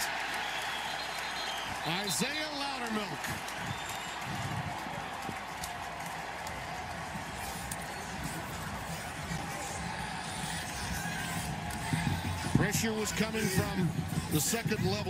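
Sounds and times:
stadium crowd cheering: 0.0s - 15.0s.

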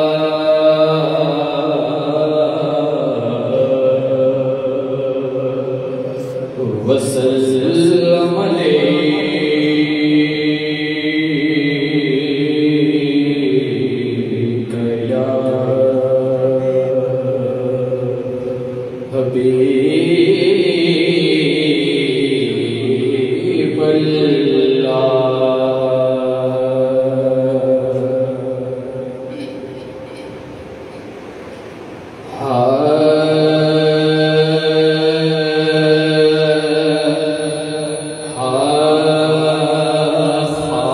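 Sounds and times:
man singing unaccompanied: 0.0s - 29.1s, 32.3s - 40.9s.

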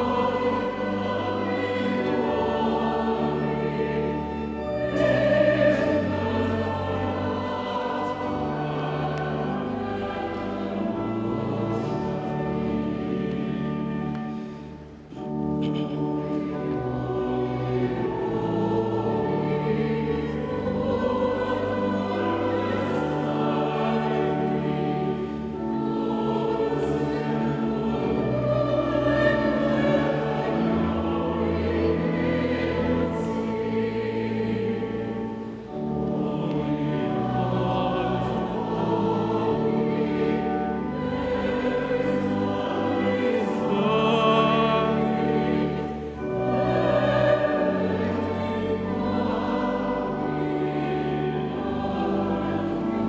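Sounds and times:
church choir singing a hymn: 0.0s - 53.0s.

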